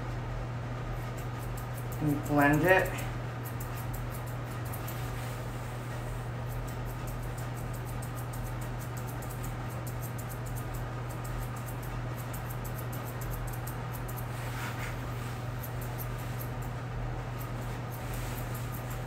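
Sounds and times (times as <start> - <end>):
steady low hum: 0.0 - 19.0
shears snipping hair: 1.0 - 19.0.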